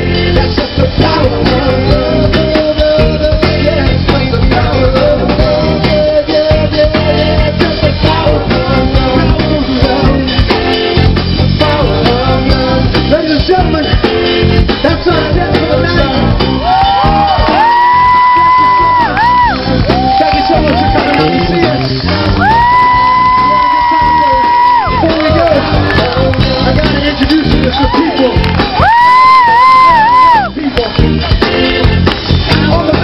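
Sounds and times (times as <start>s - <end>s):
live band playing: 0.0s - 33.0s
man singing: 0.0s - 33.0s.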